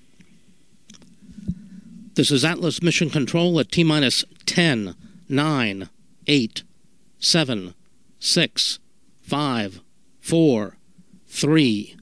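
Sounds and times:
low hum: 0:00.0 - 0:08.2.

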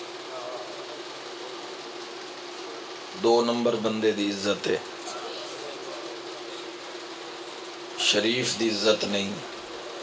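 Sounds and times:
steady hum: 0:00.0 - 0:10.0.

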